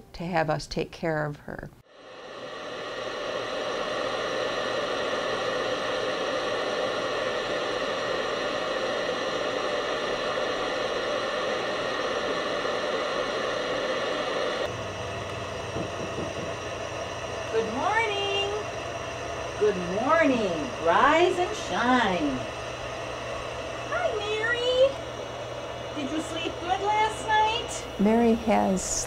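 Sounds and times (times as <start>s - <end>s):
cpap machine hiss: 2.0s - 29.0s
knocks on wooden door: 15.7s - 16.6s.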